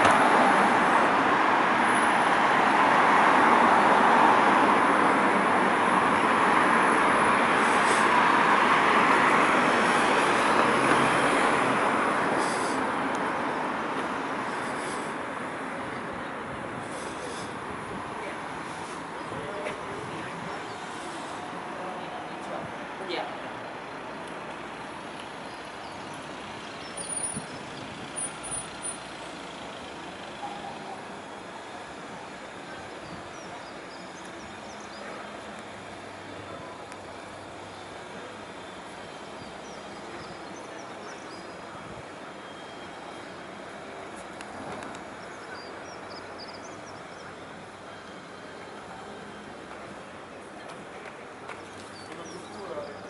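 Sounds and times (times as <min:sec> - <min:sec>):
road traffic: 0:00.0 - 0:53.0.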